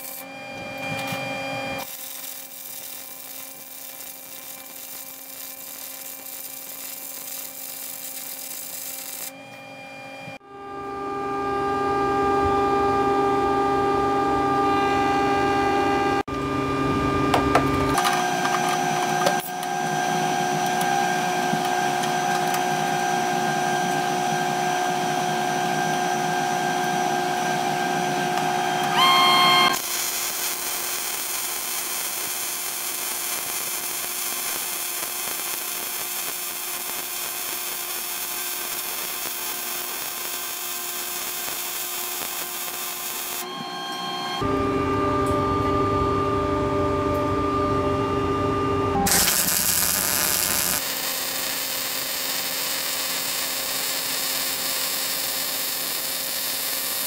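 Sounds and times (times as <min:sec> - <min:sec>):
welding arc crackle: 0:00.0 - 0:00.2, 0:01.8 - 0:09.3, 0:29.0 - 0:43.4, 0:49.1 - 0:57.0
welder buzzing hum: 0:00.0 - 0:43.7, 0:44.4 - 0:57.0.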